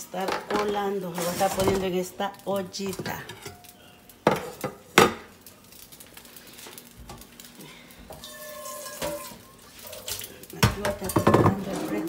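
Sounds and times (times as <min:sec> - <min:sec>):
dishes and utensils clinking: 0:02.8 - 0:03.7, 0:08.1 - 0:12.0
kitchenware knocking on counter: 0:10.6 - 0:11.6.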